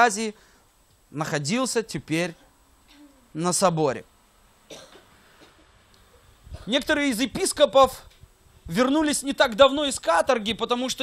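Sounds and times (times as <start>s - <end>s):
person coughing: 4.7s - 5.7s.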